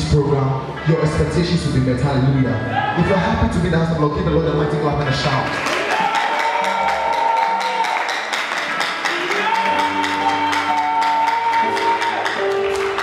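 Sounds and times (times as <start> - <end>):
congregation cheering and clapping: 5.3 - 13.0
held keyboard chords: 6.4 - 13.0.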